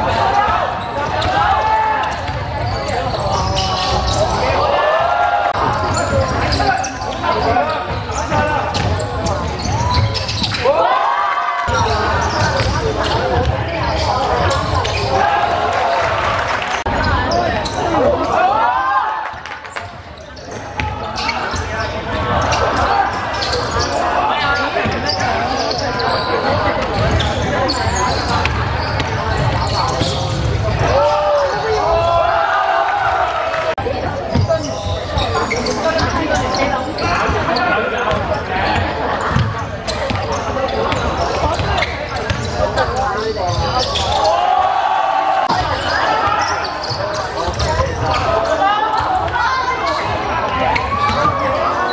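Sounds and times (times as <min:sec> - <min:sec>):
players shouting: 0:00.0 - 0:19.4, 0:20.5 - 0:39.2, 0:42.8 - 0:51.9
basketball bouncing on court: 0:00.8 - 0:04.4, 0:05.6 - 0:10.6, 0:11.7 - 0:15.0, 0:24.5 - 0:30.8, 0:34.1 - 0:44.1.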